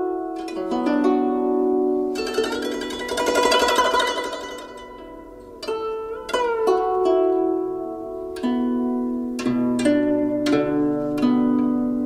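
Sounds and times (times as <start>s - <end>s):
plucked zither notes: 0.0s - 12.0s.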